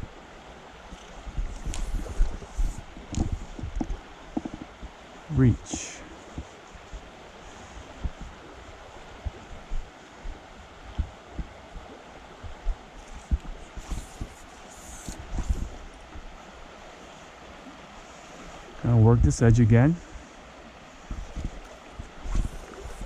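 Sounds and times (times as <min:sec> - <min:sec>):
stream flowing over stones: 0:00.0 - 0:18.9.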